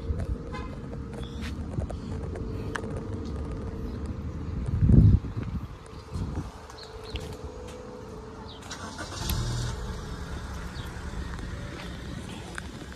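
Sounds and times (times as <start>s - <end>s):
traffic rush: 0.0s - 12.9s
car engine running: 7.4s - 12.9s.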